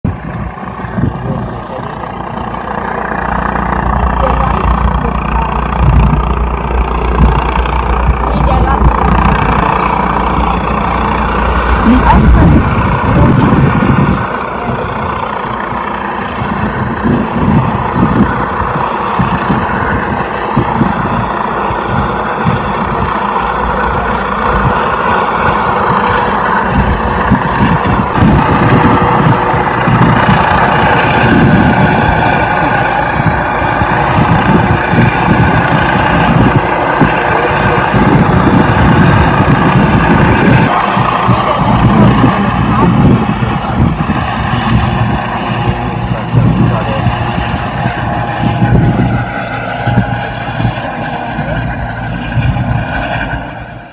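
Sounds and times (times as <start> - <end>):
helicopter flying low overhead: 0.0 - 53.9.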